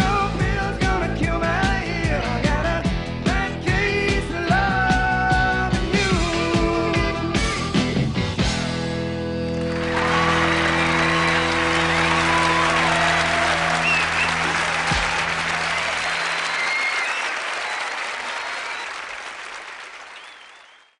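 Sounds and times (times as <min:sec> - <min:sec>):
rock band held chord: 0:04.9 - 0:16.4
audience applause: 0:09.5 - 0:21.0.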